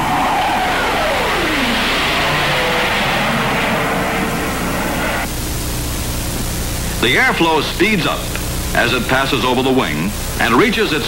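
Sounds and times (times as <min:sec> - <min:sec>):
jet aircraft engine roar: 0:00.0 - 0:11.0.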